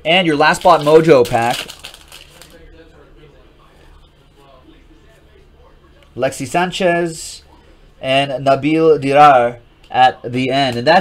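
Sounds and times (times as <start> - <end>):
foil pack crinkling: 0.3 - 2.6
cards being handled: 0.4 - 2.6.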